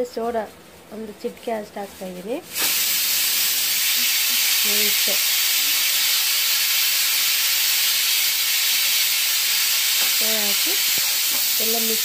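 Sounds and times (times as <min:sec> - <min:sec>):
steady high hiss: 0:02.3 - 0:12.0.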